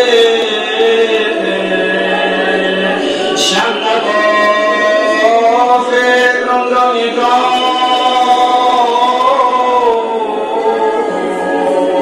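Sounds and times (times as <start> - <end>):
man chanting unaccompanied: 0.0 - 11.2.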